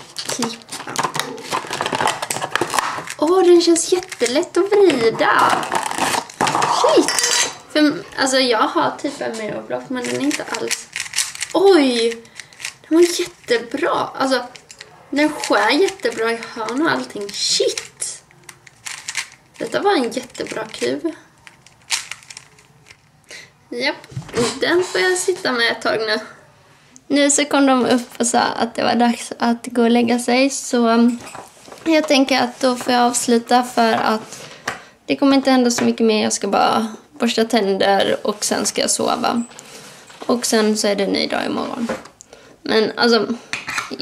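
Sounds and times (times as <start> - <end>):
plastic packaging crinkling: 0.0 - 7.0, 9.8 - 23.2
puzzle cube clicking: 10.0 - 13.6, 14.5 - 23.0.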